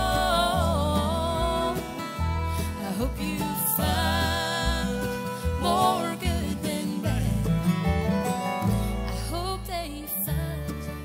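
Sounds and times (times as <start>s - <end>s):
woman singing: 0.0s - 7.8s, 8.9s - 11.0s
bass notes: 0.0s - 11.0s
mandolin: 0.0s - 11.0s
strummed acoustic guitar: 0.0s - 11.0s.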